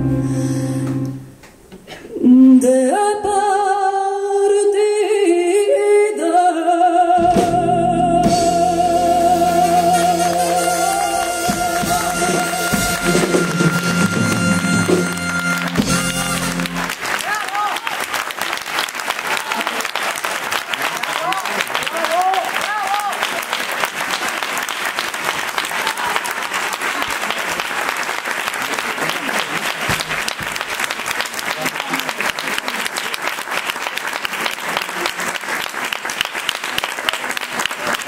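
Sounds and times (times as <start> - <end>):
audience applauding: 9.9 - 38.0.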